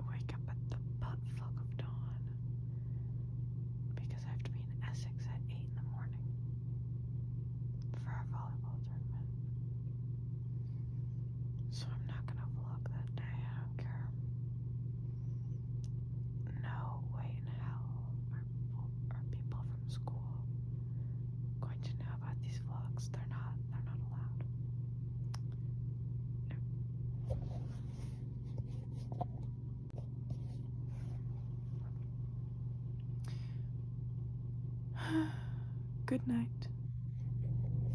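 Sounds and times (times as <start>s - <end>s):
young woman whispering: 0.0s - 2.4s, 4.0s - 6.2s, 7.9s - 9.3s, 11.7s - 14.2s, 16.5s - 20.4s, 21.6s - 24.5s
steady low hum: 0.0s - 37.9s
person sighing: 35.0s - 35.7s.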